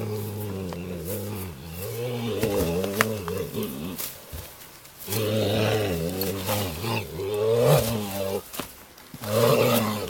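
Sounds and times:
horse groaning: 0.0 - 8.5, 9.2 - 10.0.

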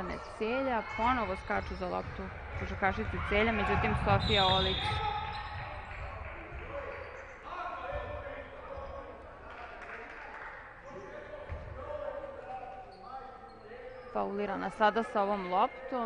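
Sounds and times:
voices calling out in a hall: 0.0 - 16.0.

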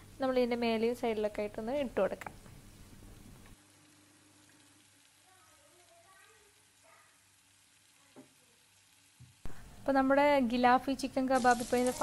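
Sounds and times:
faint sizzling in a pan: 0.0 - 12.0.

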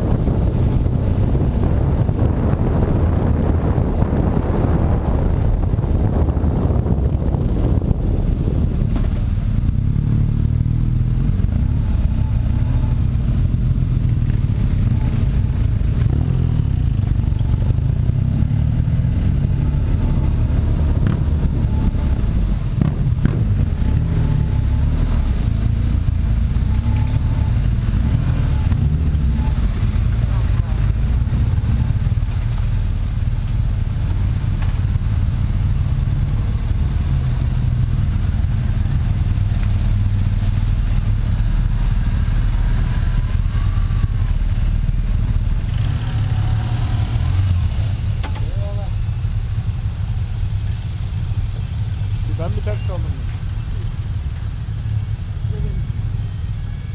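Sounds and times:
motorcycle engines rumbling: 0.0 - 56.9.

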